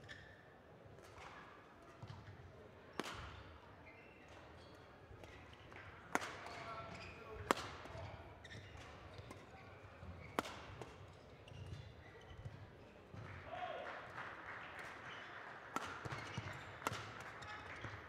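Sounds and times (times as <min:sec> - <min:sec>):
shoes squeaking on court floor: 0:03.8 - 0:05.8, 0:06.5 - 0:13.2, 0:16.0 - 0:18.0
racket striking shuttlecock: 0:15.8 - 0:17.2.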